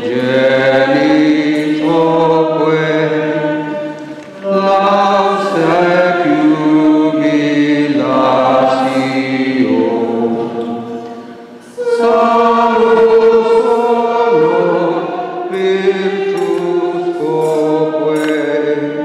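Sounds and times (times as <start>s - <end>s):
group singing a hymn: 0.0s - 19.0s.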